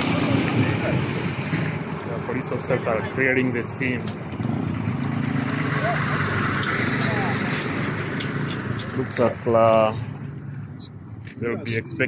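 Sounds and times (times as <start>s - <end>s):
faint voices: 5.6s - 7.8s.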